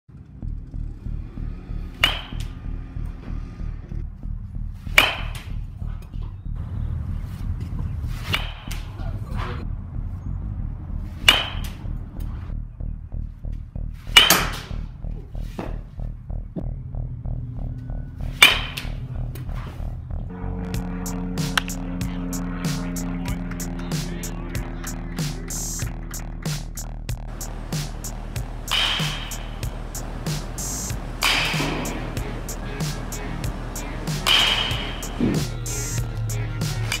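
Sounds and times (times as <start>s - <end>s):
background music with steady beat: 0.1s - 37.0s
bat hitting baseball ping: 2.0s - 2.5s, 4.9s - 5.5s, 8.3s - 8.9s, 11.2s - 11.8s, 14.1s - 14.8s, 18.4s - 19.0s, 20.3s - 22.2s, 27.4s - 35.8s.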